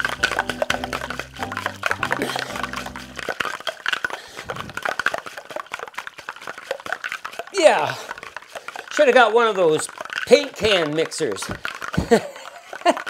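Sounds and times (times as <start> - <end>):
background music: 0.0 - 3.3
liquid sloshing: 0.0 - 12.8
ice rattling in cocktail shaker: 0.0 - 13.0.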